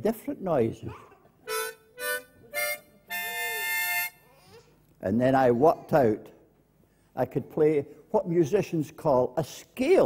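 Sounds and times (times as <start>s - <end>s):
harmonica notes and chord: 1.5s - 4.4s.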